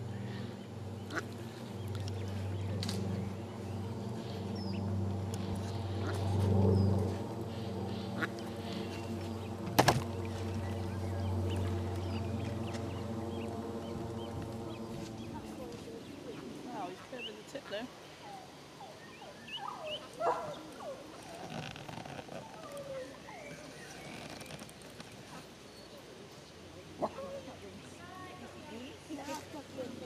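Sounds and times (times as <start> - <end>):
low hum: 0.0 - 16.9
ducks quacking: 0.2 - 2.5, 3.6 - 17.8.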